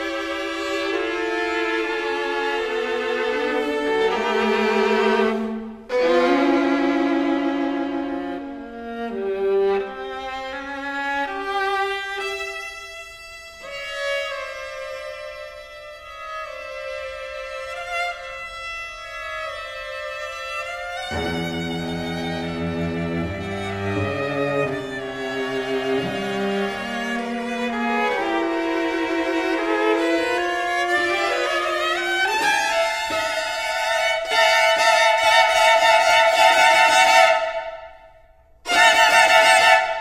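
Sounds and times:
string quartet playing: 0.0s - 40.0s.

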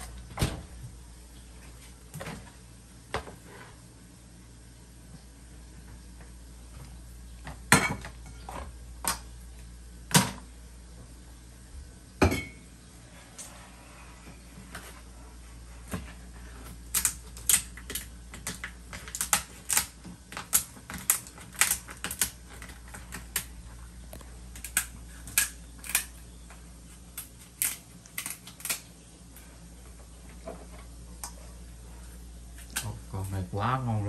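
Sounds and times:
shears cracking lobster shell: 16.8s - 26.4s, 27.0s - 29.0s.

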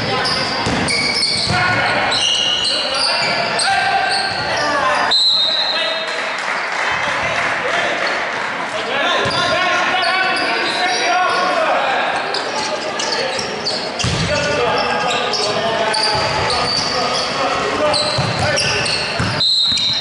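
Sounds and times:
echoing voices and chatter: 0.0s - 20.0s.

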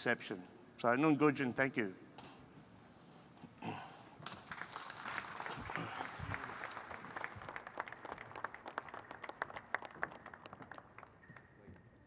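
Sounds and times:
audience applause: 4.2s - 11.3s.

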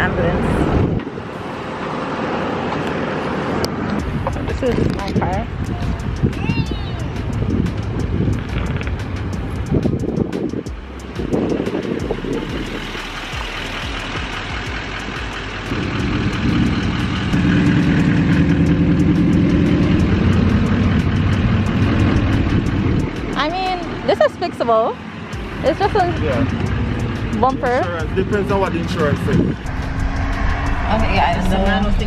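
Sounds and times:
road noise: 0.0s - 32.0s
vehicle engine droning: 0.0s - 32.0s.

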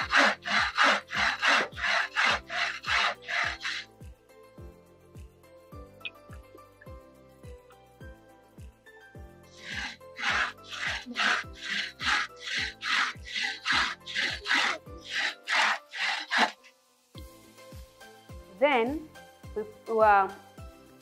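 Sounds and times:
bow saw cutting timber: 0.0s - 3.9s, 9.5s - 16.8s.

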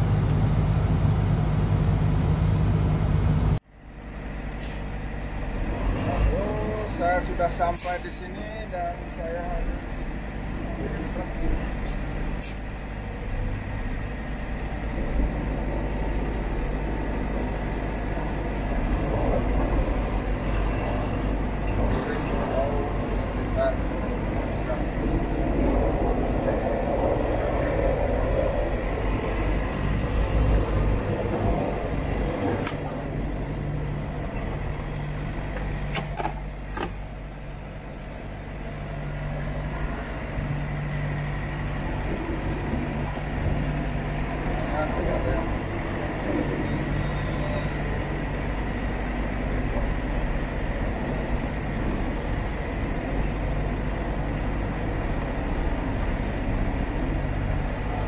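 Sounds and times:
road noise: 0.0s - 58.0s
truck engine rumbling: 0.0s - 58.0s.

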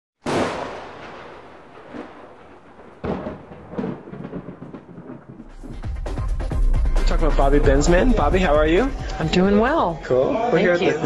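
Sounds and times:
loud booming hits: 0.2s - 9.8s.

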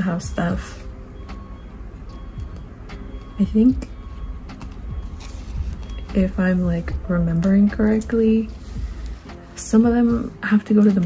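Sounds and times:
soft lo-fi hip hop music: 0.0s - 11.0s.

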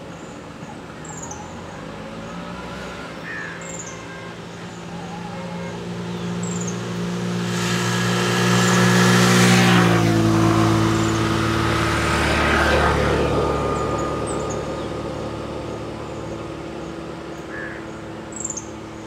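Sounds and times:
vehicle driving past: 1.1s - 19.0s.

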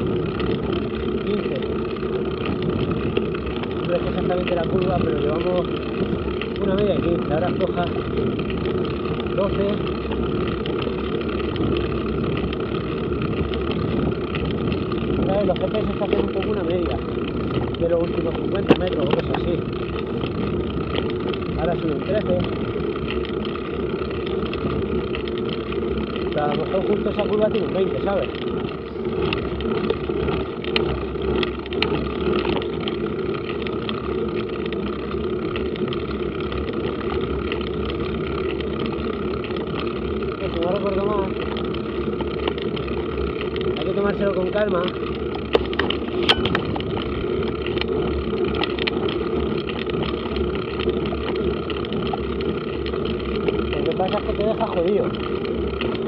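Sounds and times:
muffled wind rush: 0.0s - 33.4s
bicycle tyre noise on road: 0.0s - 56.0s.

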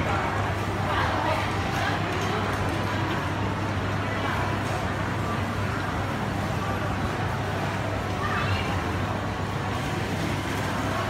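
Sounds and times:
indoor crowd background noise: 0.0s - 11.0s.

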